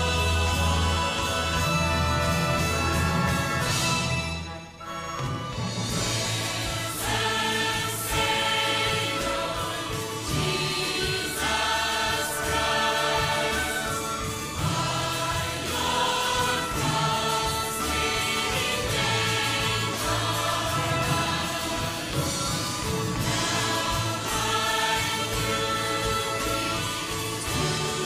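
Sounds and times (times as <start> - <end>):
choir singing: 0.0 - 4.2, 5.9 - 28.0
orchestral accompaniment: 0.0 - 28.0.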